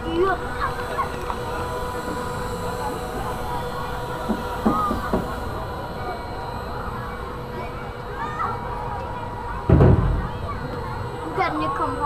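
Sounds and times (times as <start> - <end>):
faint steady hum: 0.0 - 12.0
rumble of moving ride: 0.0 - 12.0.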